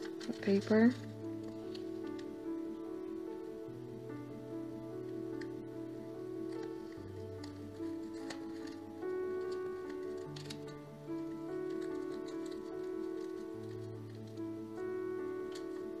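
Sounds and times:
paper crinkles and taps: 0.0 - 0.7, 6.5 - 10.8, 11.6 - 14.5, 15.5 - 15.9
slow background music: 0.0 - 16.0.

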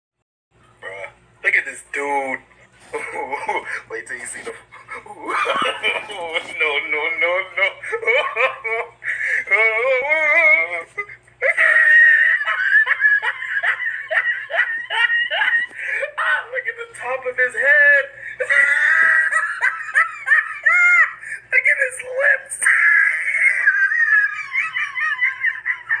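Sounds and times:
person laughing high-pitched: 2.8 - 16.6, 18.1 - 21.5, 22.7 - 26.0.

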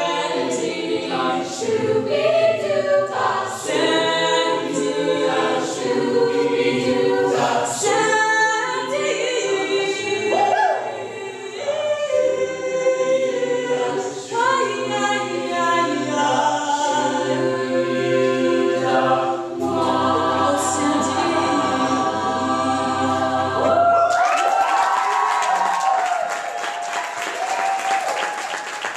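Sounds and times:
a cappella group singing: 0.0 - 24.2
audience applause: 23.6 - 28.9.

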